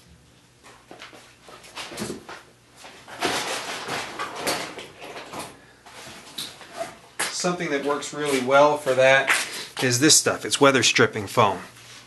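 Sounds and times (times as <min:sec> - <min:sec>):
rummaging rustles and scrapes: 0:01.3 - 0:07.0.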